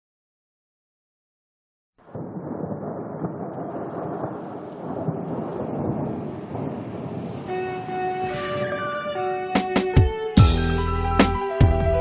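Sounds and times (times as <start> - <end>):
rumble of thunder: 2.0 - 8.9
rain: 2.0 - 9.3.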